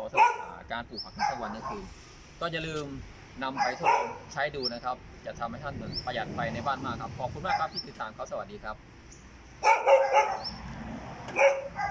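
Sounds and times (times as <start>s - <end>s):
dog barking: 0.1s - 0.6s, 1.2s - 1.9s, 3.5s - 4.3s, 7.5s - 7.7s, 9.6s - 10.6s, 11.3s - 11.9s.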